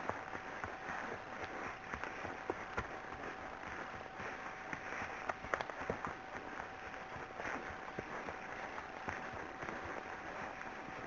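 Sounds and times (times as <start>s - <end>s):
horse hoof thuds: 0.0s - 6.3s
steady rustling hiss: 0.0s - 11.0s.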